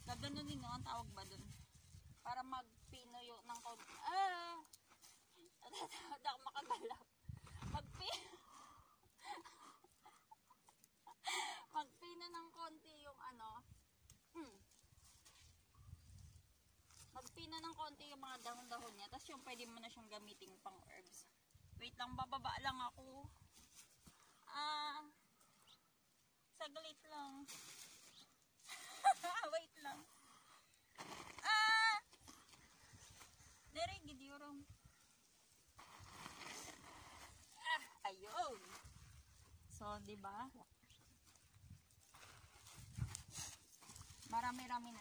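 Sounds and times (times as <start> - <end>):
faint rustling: 27.0 - 45.0.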